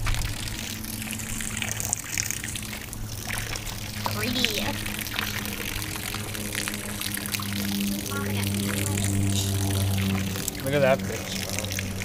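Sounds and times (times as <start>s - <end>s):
hose water splashing onto water: 0.0s - 12.0s
steady low hum: 0.0s - 12.0s.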